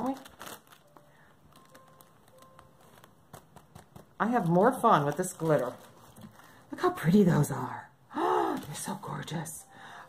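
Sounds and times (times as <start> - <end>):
paper filter crinkling: 0.0 - 7.5, 8.4 - 9.3.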